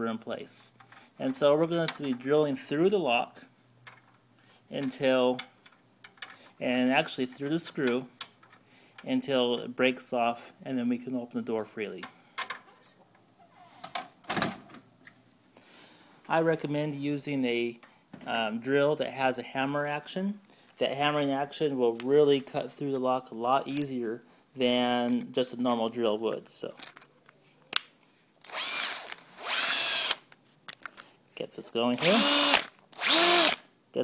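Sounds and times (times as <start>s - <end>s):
hammer drill spinning freely: 28.4s - 30.2s, 32.0s - 33.7s.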